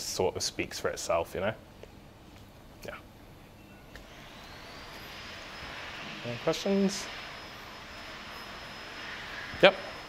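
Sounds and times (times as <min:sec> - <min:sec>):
faint high whine: 0:00.0 - 0:10.0
rushing hiss: 0:04.1 - 0:10.0.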